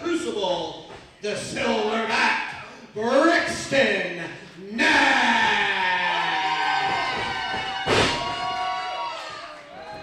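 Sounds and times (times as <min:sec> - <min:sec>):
thump: 0:06.9 - 0:08.4.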